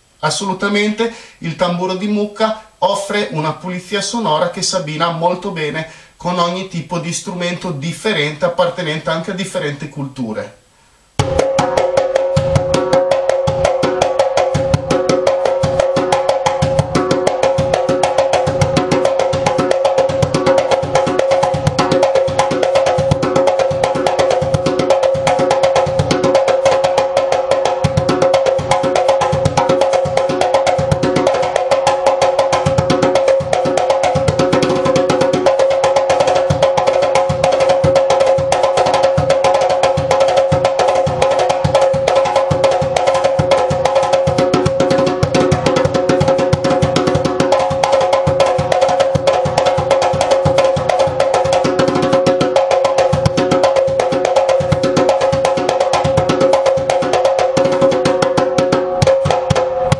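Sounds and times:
djembe played by hand: 11.2s - 59.9s.

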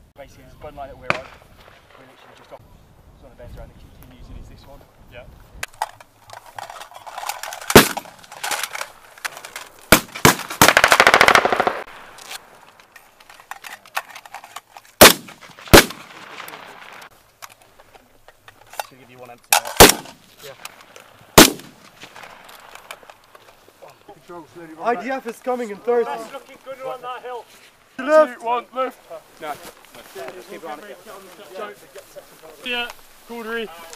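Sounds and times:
rifle gunshots: 7.7s - 8.2s, 9.9s - 12.1s, 15.0s - 17.1s, 19.6s - 20.2s, 21.4s - 22.4s
automatic gunfire burst: 9.9s - 11.9s, 15.0s - 16.2s, 19.8s - 20.1s, 21.4s - 21.7s.

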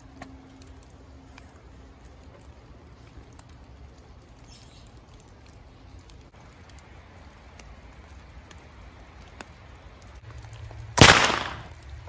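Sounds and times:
rifle shot with echo: 11.0s - 11.7s.

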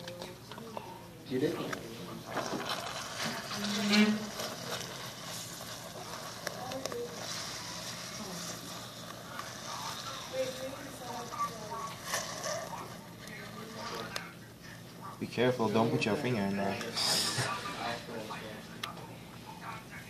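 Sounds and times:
foam hissing and rustling: 2.1s - 14.1s.

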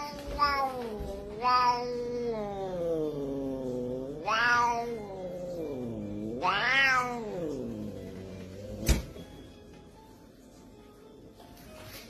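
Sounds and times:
cat growling yowl: 0.0s - 9.1s.

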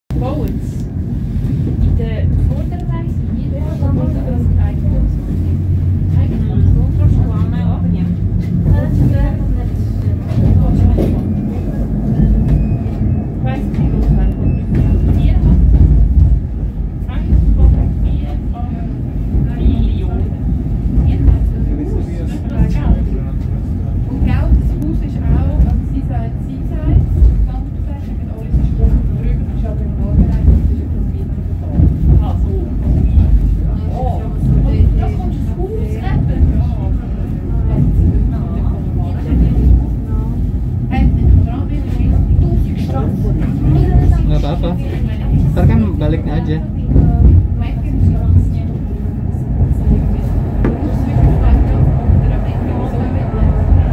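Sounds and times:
low rumble of funicular cabin: 0.1s - 53.9s
murmur of passengers' voices: 0.1s - 53.9s.

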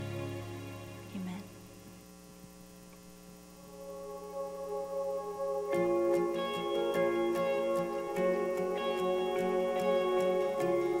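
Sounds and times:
worship music: 0.0s - 1.2s, 3.6s - 11.0s
soft sustained chord: 0.0s - 1.9s, 3.6s - 11.0s
electrical hum: 0.0s - 11.0s.

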